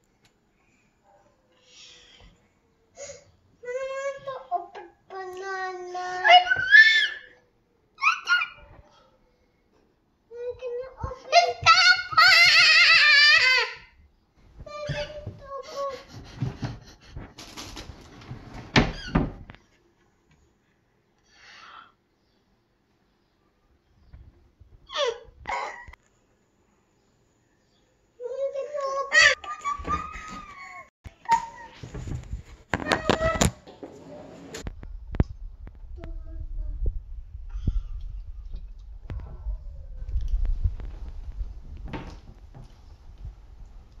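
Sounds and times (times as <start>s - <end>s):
young child's wordless vocalizing: 3.0s - 7.4s, 10.3s - 13.8s, 14.7s - 16.4s, 28.2s - 31.8s
low rumbling handling noise: 31.9s - 44.0s.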